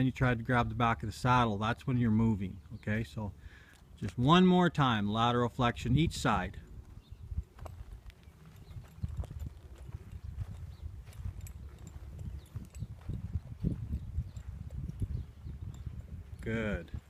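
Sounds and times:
horse hooves thudding on dirt: 0:06.2 - 0:17.0.

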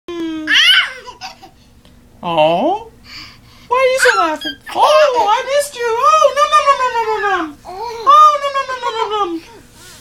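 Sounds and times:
toddler shrieking with laughter: 0:00.5 - 0:01.1.

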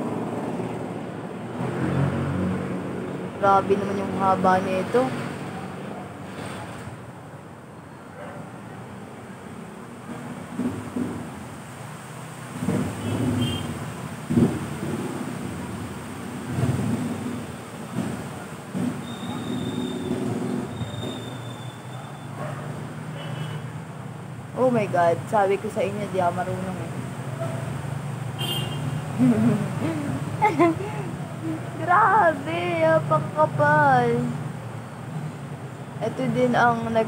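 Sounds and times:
rumble of passing traffic: 0:00.0 - 0:37.0.

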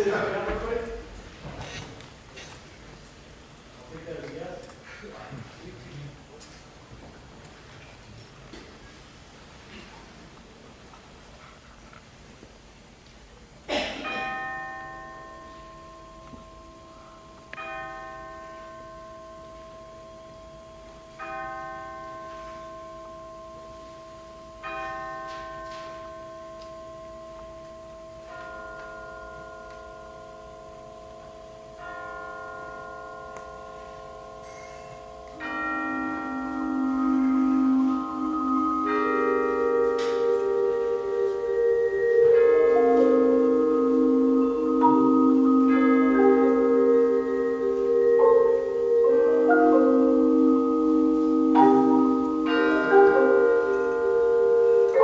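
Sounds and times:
mallet percussion chords ringing: 0:14.0 - 0:55.0
sustained chords: 0:26.2 - 0:55.0.

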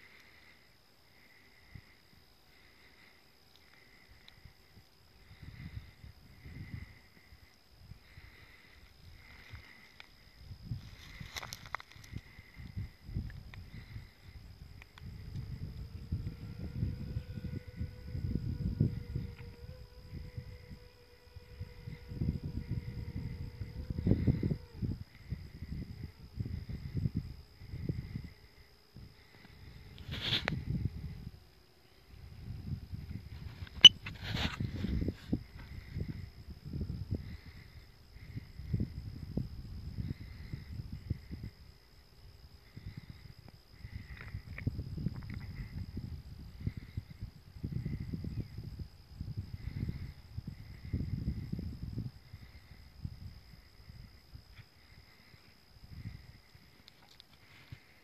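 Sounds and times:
faint high whine: 0:00.0 - 0:58.0
wind buffeting microphone: 0:04.4 - 0:31.4, 0:32.1 - 0:56.8.

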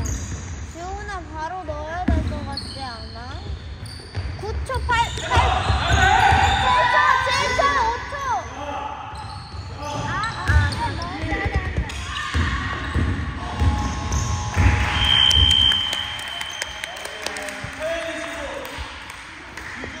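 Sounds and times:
girls calling out: 0:06.3 - 0:08.5
basketball bouncing on hardwood floor: 0:10.4 - 0:14.8.

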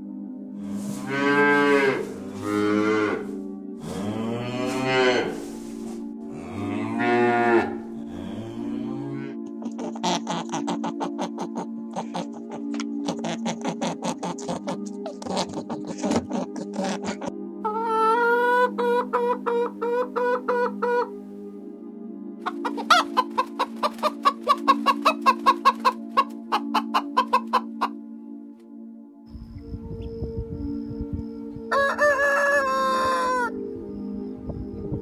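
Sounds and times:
background music: 0:00.0 - 0:35.0
chickens clucking loudly: 0:09.4 - 0:21.1, 0:22.4 - 0:28.0, 0:31.4 - 0:33.5
chicken wavering call: 0:09.6 - 0:21.1, 0:22.4 - 0:28.0, 0:31.6 - 0:33.6.

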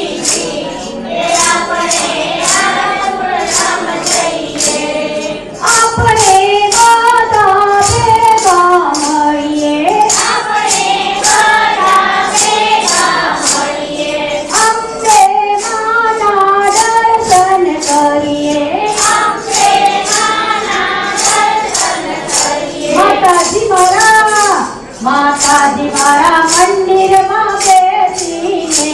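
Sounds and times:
group singing devotional song: 0:00.0 - 0:24.4, 0:25.0 - 0:28.9
jingling hand percussion: 0:00.0 - 0:28.9.

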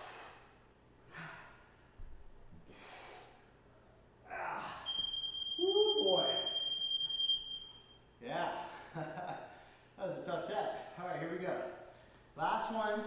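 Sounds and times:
man breathing hard and gasping: 0:00.0 - 0:02.0, 0:02.6 - 0:04.9
man groaning: 0:04.2 - 0:04.9
long electronic beep: 0:04.9 - 0:08.0.

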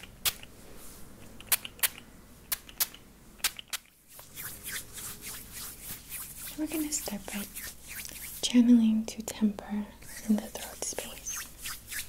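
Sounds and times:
palms rubbing together: 0:03.5 - 0:08.6, 0:10.0 - 0:12.0.

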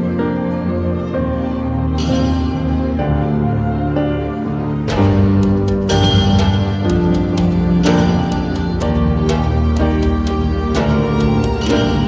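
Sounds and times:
symphonic music on electronic keyboard: 0:00.0 - 0:12.0.

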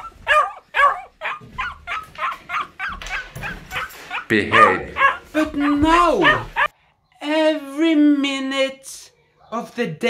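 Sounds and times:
dog yelping and whining: 0:00.0 - 0:06.7.

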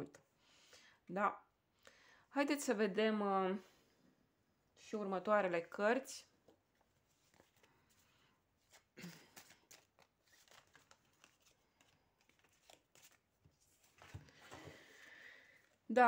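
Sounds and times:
cards shuffling and flicking: 0:07.1 - 0:14.7.

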